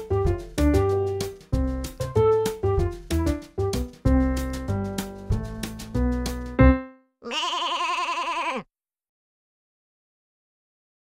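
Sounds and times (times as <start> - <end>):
farm animal bleating: 7.2 - 8.7.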